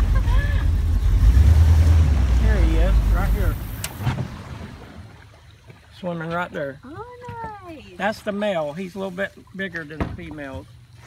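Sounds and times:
boat engine rumble: 0:00.0 - 0:11.0
faint wind: 0:00.0 - 0:11.0
water noise: 0:00.0 - 0:11.0.

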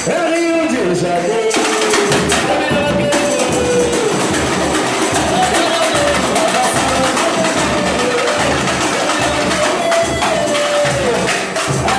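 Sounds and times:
fast rattle of small percussion: 0:01.4 - 0:11.9
bass drums beating: 0:01.5 - 0:11.9.

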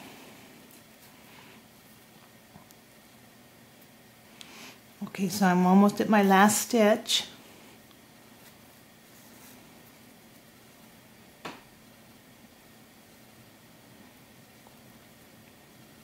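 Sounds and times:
faint room hiss: 0:00.0 - 0:16.0.

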